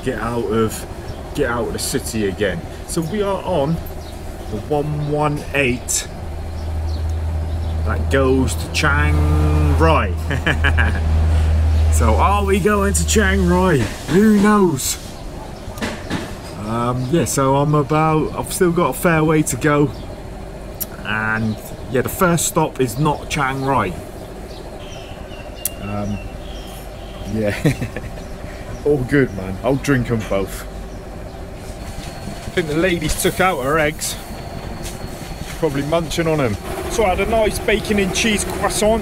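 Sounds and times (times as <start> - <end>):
road traffic engine hum: 0.0 - 39.0
man saying um: 25.8 - 26.2.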